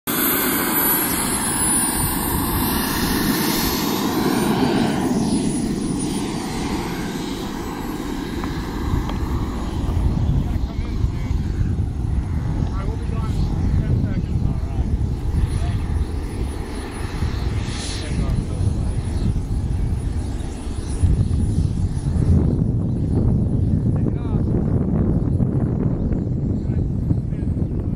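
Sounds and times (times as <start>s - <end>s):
model jet turbine whining: 0.1s - 27.9s
low rumble: 1.8s - 27.9s.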